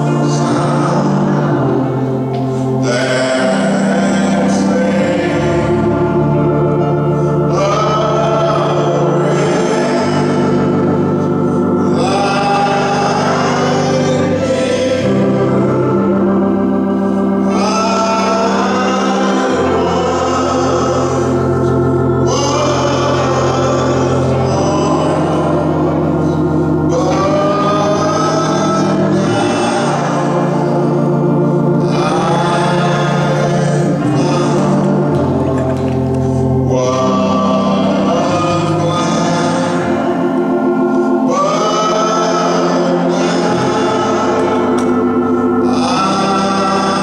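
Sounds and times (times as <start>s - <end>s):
gospel singing: 0.0s - 47.0s
organ chords: 0.0s - 47.0s.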